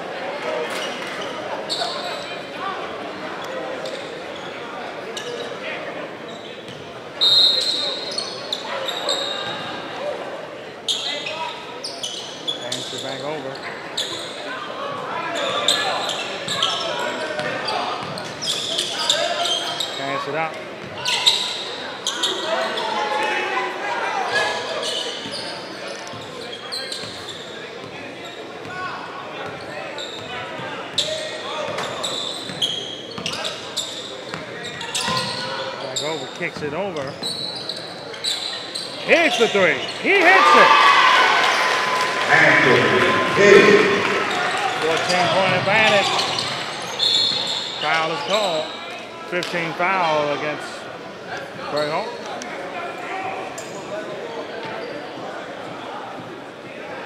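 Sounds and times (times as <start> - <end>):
players and spectators voices: 0.0 - 57.0
shoe squeaks: 0.8 - 2.3, 6.3 - 9.6, 10.9 - 14.4, 15.3 - 20.2, 21.0 - 22.9, 24.3 - 28.4, 29.6 - 36.3, 37.0 - 40.1, 43.5 - 49.0.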